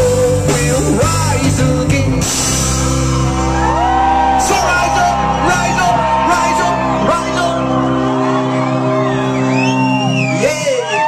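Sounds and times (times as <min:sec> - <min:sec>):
crowd whooping and cheering: 0:02.9 - 0:11.0.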